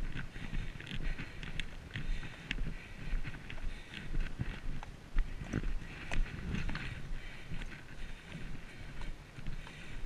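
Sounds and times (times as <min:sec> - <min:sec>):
hoofbeats on wet pavement: 0:00.0 - 0:10.0.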